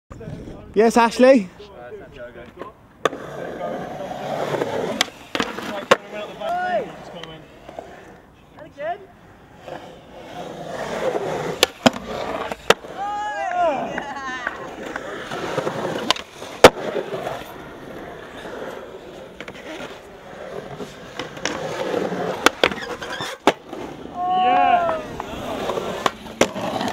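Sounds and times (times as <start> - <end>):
skateboard wheels rolling on concrete: 0.1 - 26.9
skateboard clacks: 4.5 - 7.4, 11.2 - 17.6, 20.8 - 26.9.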